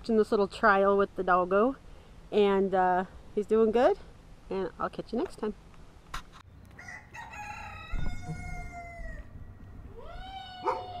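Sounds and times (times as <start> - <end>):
rooster crowing: 6.8 - 11.0.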